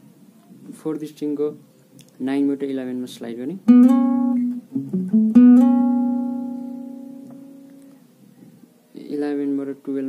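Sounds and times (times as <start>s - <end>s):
acoustic guitar lead notes: 3.6s - 8.0s.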